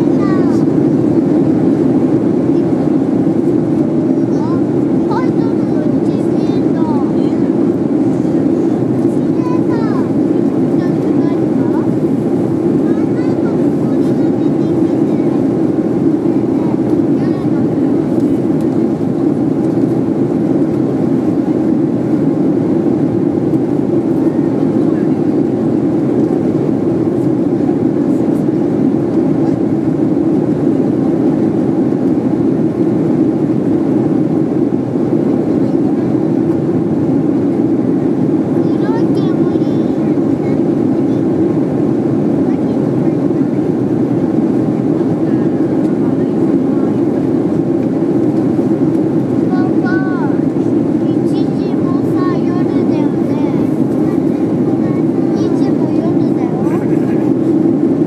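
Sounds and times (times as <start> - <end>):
airliner cabin engine rush: 0.0 - 58.0.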